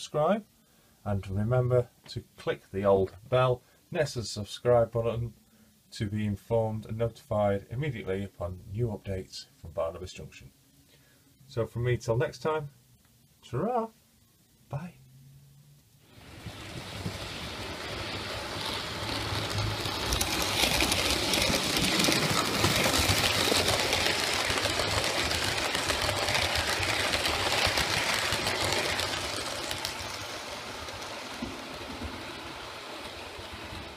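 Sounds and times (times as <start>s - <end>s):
model train running on track: 16.1s - 33.9s.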